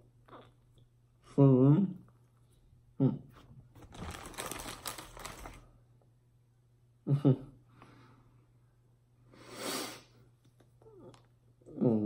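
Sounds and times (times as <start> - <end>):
muffled humming with full mouth: 0.0 - 3.7
plastic bag crinkling: 3.8 - 5.8.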